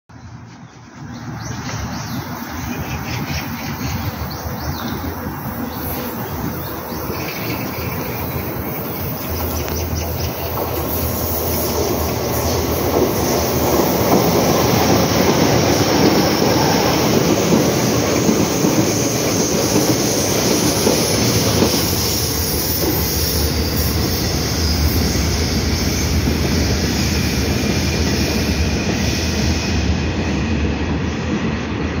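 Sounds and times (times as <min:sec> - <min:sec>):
train wheels on rails: 0:00.3 - 0:32.0.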